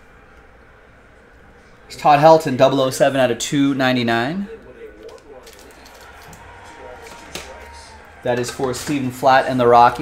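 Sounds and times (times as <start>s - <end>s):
faint voices: 4.2s - 10.0s.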